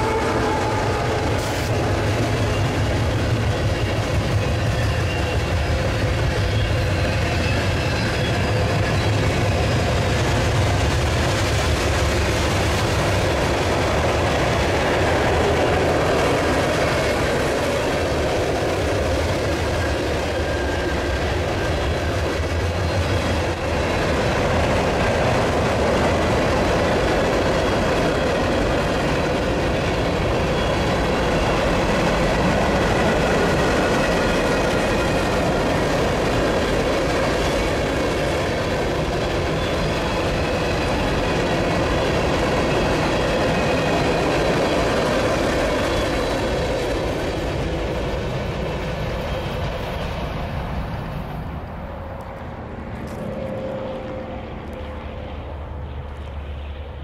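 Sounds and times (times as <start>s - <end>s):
freight train wheels rumbling on rail: 0.0s - 57.0s.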